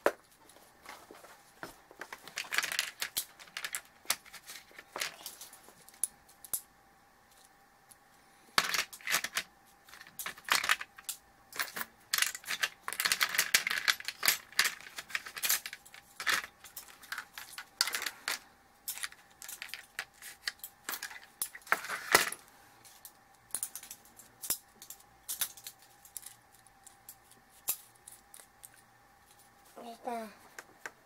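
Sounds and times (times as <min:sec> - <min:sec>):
small hard objects clicking: 0:08.6 - 0:22.3.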